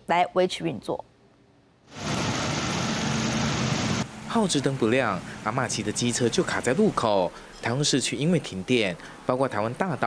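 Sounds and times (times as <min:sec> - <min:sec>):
street traffic noise: 0:01.9 - 0:10.0.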